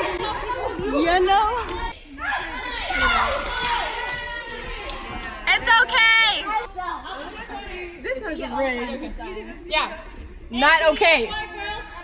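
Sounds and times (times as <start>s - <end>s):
girls talking and chattering: 0.0s - 12.0s.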